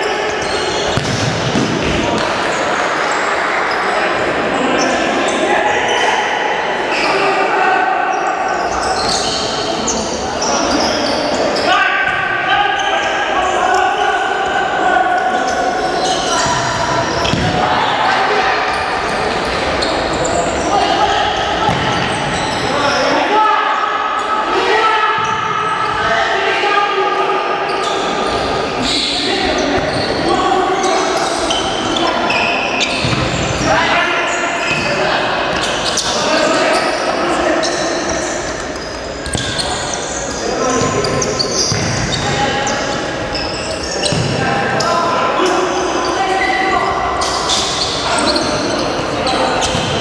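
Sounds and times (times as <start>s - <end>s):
ball thudding on wooden court: 0.9s - 2.3s.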